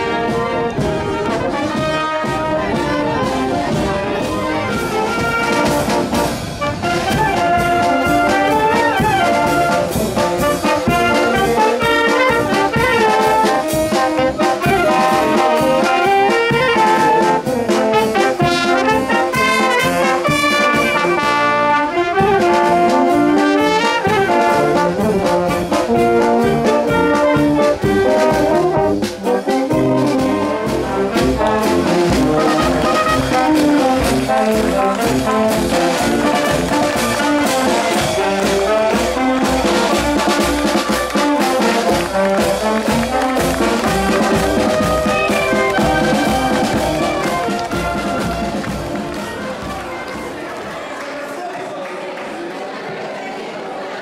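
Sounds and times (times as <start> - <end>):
snare drum: 0.0 - 49.8
wind band playing: 0.0 - 50.7.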